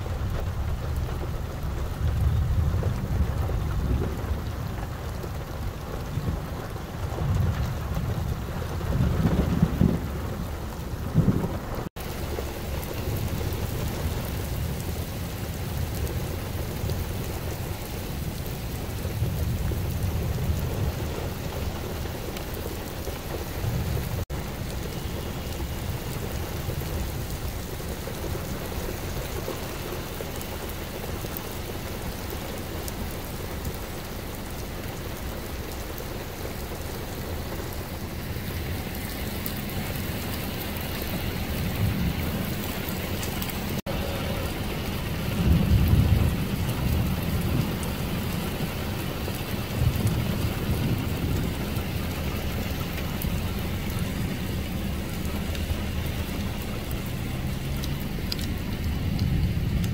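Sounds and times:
rain hissing: 0.0s - 59.9s
low rolling thunder: 0.1s - 34.4s, 35.0s - 59.9s.

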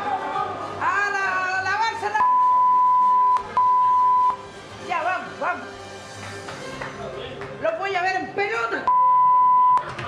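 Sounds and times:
steady electronic beep: 2.2s - 4.4s, 8.9s - 9.8s.

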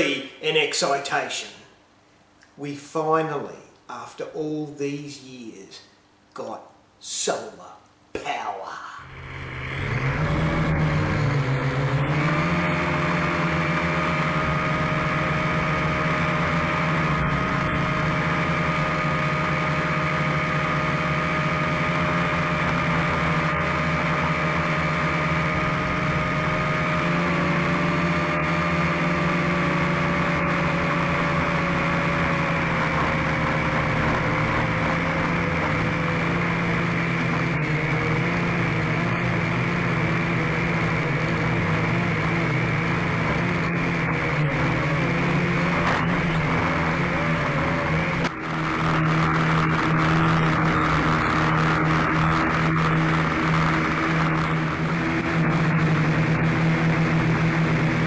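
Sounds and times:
drone propellers whirring: 9.0s - 58.0s.

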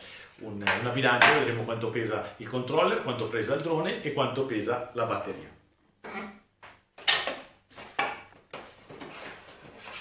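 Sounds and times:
soft rustle of packaging: 7.7s - 10.0s.

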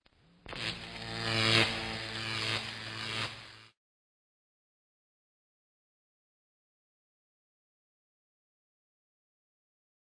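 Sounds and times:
gritty buzzing low tone: 0.0s - 3.8s.

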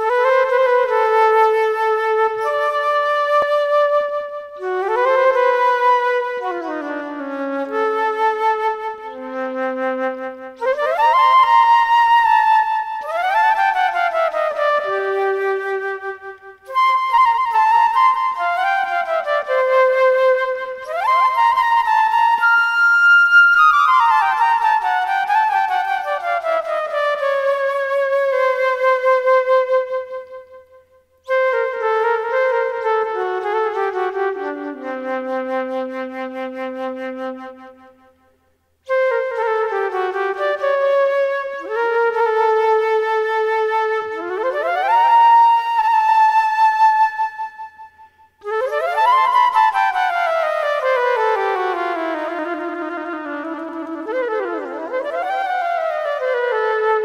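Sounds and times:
solo flute melody: 0.0s - 57.0s.

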